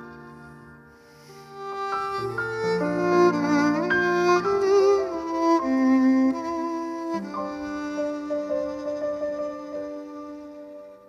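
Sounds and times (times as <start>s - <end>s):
piano chords: 0.0s - 11.0s
violin melody with vibrato: 0.0s - 11.0s.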